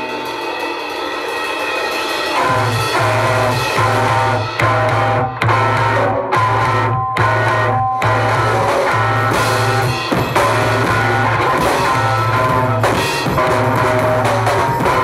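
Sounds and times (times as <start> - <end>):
live rock band playing: 0.0 - 15.0
repeating low bass note: 2.4 - 15.0.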